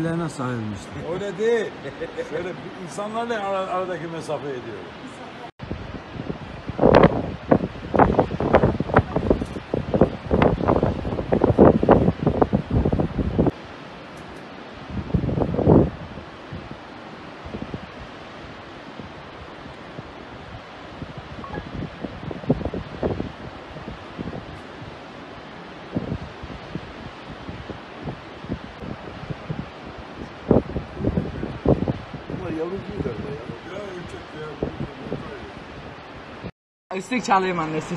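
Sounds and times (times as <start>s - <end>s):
wind buffeting microphone: 0.6s - 37.9s.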